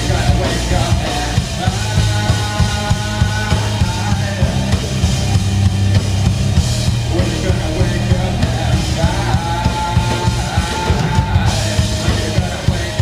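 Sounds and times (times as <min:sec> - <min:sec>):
distorted electric guitars: 0:00.0 - 0:13.0
fast drum kit hits: 0:00.0 - 0:13.0.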